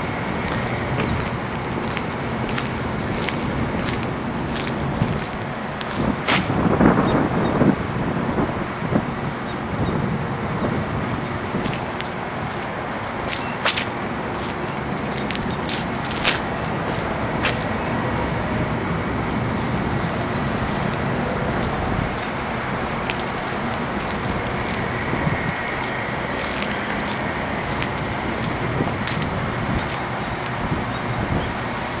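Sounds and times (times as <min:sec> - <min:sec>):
distant traffic rumble: 0:00.0 - 0:32.0
wind: 0:00.0 - 0:32.0.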